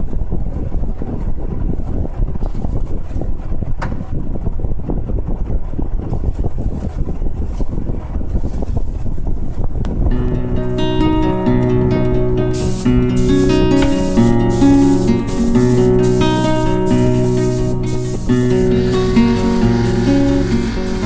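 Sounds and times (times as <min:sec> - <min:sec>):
spray gun air rush: 0:12.0 - 0:21.0.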